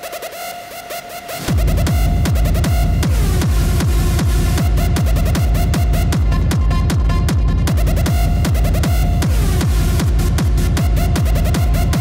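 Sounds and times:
hard techno music: 0:00.0 - 0:12.0
heavy kick drum pounding: 0:01.5 - 0:12.0.

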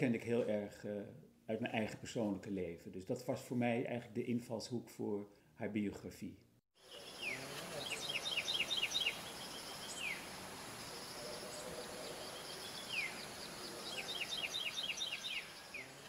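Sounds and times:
birds chirping: 0:06.8 - 0:16.0
steady background hiss: 0:06.8 - 0:16.0.

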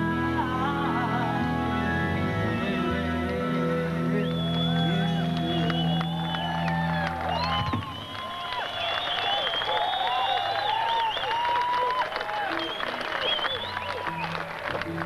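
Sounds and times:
crowd cheering and whistling: 0:04.1 - 0:14.9.

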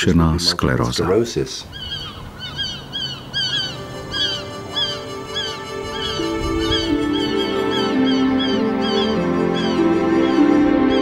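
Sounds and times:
gulls calling: 0:00.0 - 0:11.0
soft sustained music: 0:03.0 - 0:11.0.

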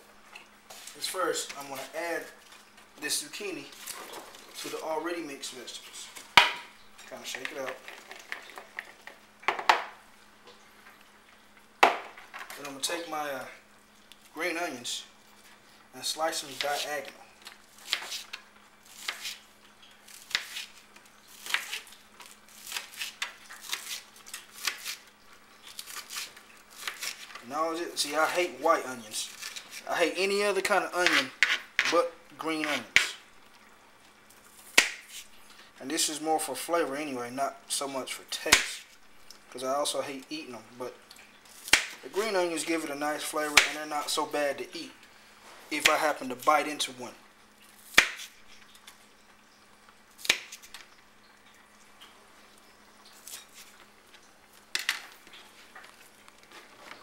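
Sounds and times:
quiet room noise: 0:00.0 - 0:57.0.

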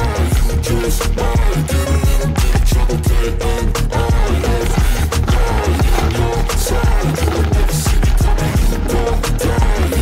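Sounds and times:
song with drum beat and bass: 0:00.0 - 0:10.0.

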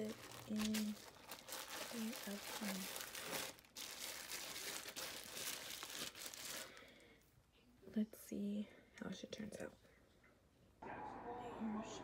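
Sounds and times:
plastic bag crinkling: 0:00.0 - 0:07.0.

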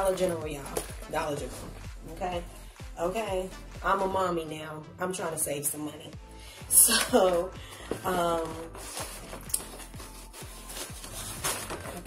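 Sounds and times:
soft background music: 0:00.0 - 0:12.0
plastic and fabric pouches rustling: 0:06.9 - 0:12.0.

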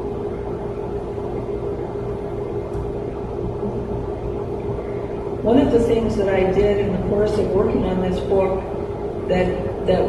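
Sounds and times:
low hum and rumble: 0:00.0 - 0:10.0.

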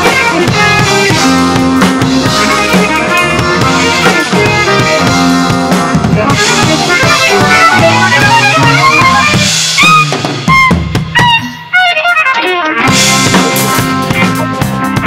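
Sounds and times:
drum kit playing: 0:00.0 - 0:15.0
jazz-rock fusion band recording: 0:00.0 - 0:15.0.

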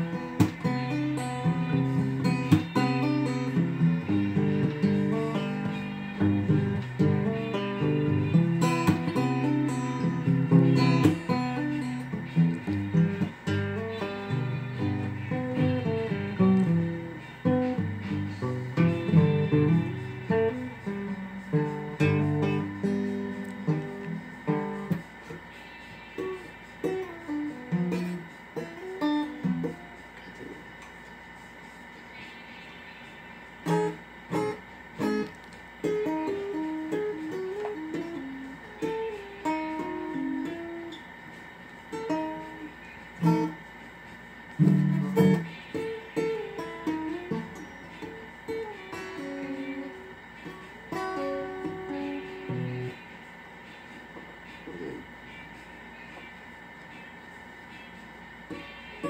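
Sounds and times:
guitar plucked melody: 0:00.0 - 0:30.9, 0:33.6 - 0:43.6, 0:44.4 - 0:53.2
guitar chords: 0:00.0 - 0:31.0, 0:33.5 - 0:57.2.

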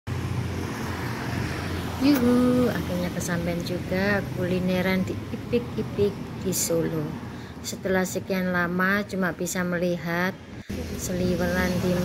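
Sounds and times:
traffic engines rumbling: 0:00.1 - 0:12.0.

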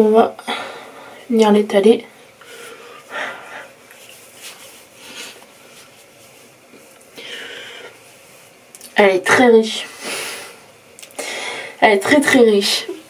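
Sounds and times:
woman breathing through nose: 0:10.0 - 0:11.8.

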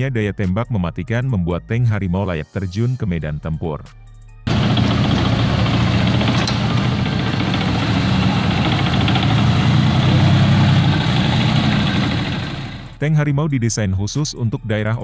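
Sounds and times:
tank engine running: 0:04.5 - 0:13.0.

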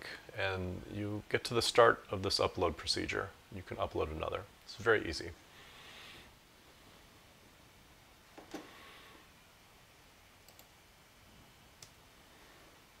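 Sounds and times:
computer mouse clicks: 0:10.4 - 0:10.7.

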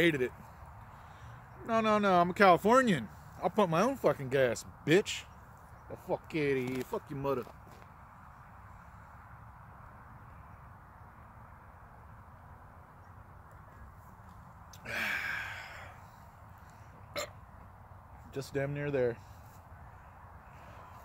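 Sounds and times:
outdoor background noise: 0:00.0 - 0:21.0
man gasping: 0:14.8 - 0:16.0.

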